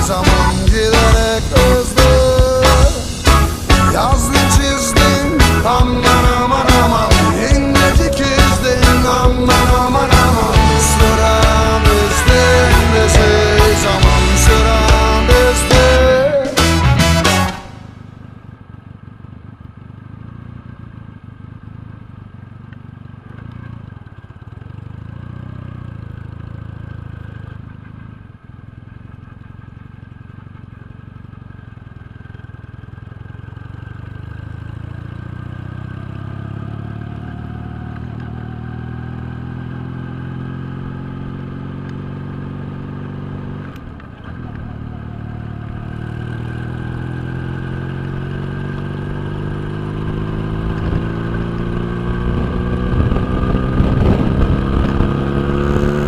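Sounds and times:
low wind rumble: 0.0s - 16.0s, 50.2s - 56.0s
motorcycle engine accelerating: 0.0s - 56.0s.

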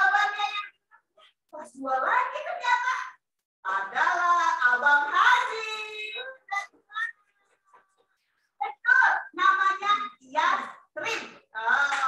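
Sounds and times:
woman singing unaccompanied: 3.7s - 6.5s.

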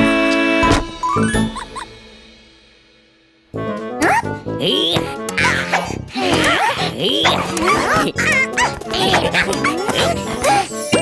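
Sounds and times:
cheerful cartoon music: 0.0s - 2.8s, 3.4s - 11.0s
high wordless character vocalizations: 4.0s - 11.0s.

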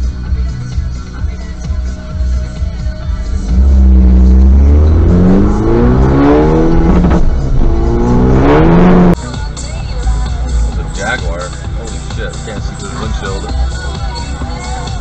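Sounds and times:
background music: 0.0s - 15.0s
engine revving hard: 3.2s - 9.2s.

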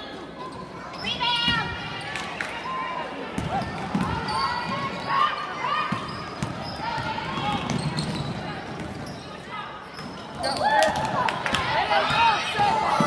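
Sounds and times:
people shouting and calling out: 10.4s - 13.0s.

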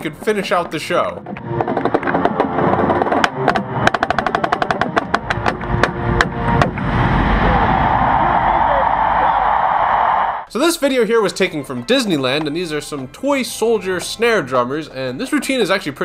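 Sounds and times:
crowd cheering in a stadium: 2.0s - 10.5s.

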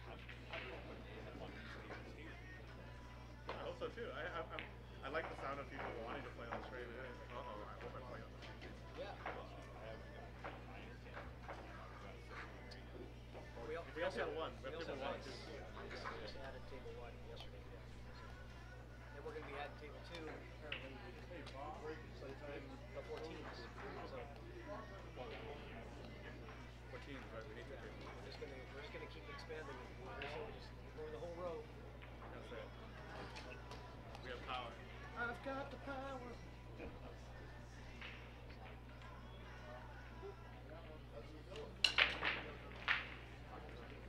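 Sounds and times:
faint background conversation: 0.0s - 44.0s
low hall hum: 0.0s - 44.0s.

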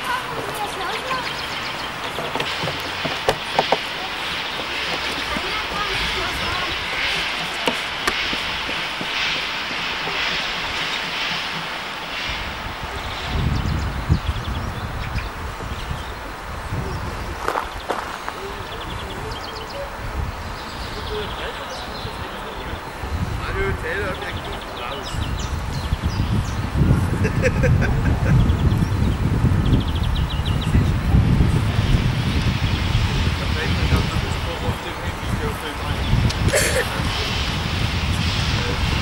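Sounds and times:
low uneven rumbling: 0.0s - 39.0s
steam locomotive hissing: 0.0s - 39.0s.

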